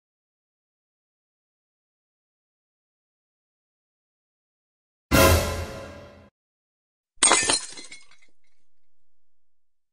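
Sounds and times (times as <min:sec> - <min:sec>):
heavy crash: 0:05.1 - 0:06.3
glass shattering: 0:07.2 - 0:08.6.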